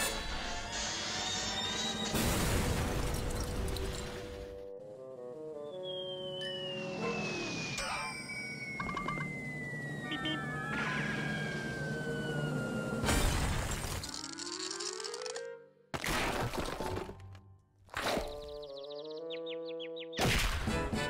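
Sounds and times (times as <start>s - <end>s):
descending cartoon whistle: 5.7s - 13.1s.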